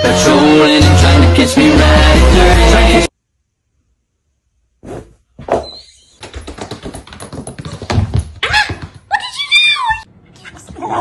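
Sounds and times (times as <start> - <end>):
pets thumping and scuffling: 4.9 - 9.4.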